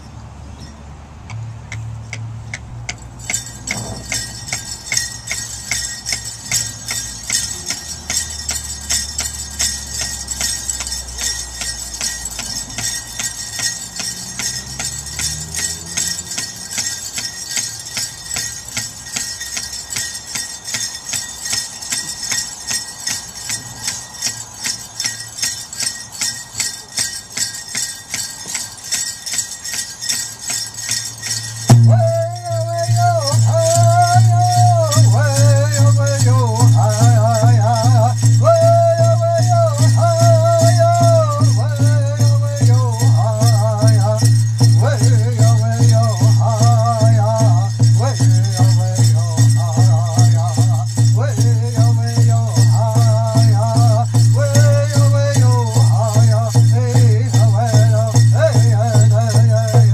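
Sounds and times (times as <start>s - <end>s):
bells jingling on dancers: 0.0s - 59.9s.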